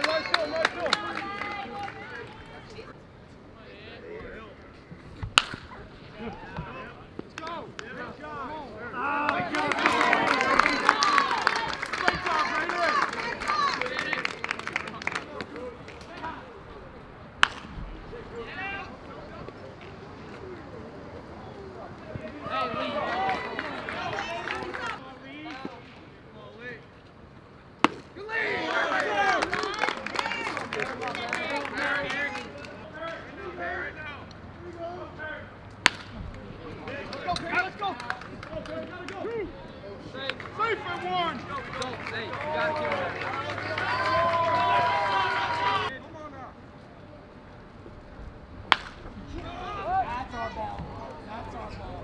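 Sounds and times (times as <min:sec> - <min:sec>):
voices chattering: 0:00.0 - 0:52.0
bat cracking a ball: 0:05.2 - 0:05.8, 0:17.4 - 0:18.0, 0:27.8 - 0:28.1, 0:35.7 - 0:36.4, 0:48.6 - 0:49.4
excited shouting voices: 0:08.4 - 0:14.2, 0:28.2 - 0:32.4, 0:40.6 - 0:45.9
people shouting: 0:42.4 - 0:45.9.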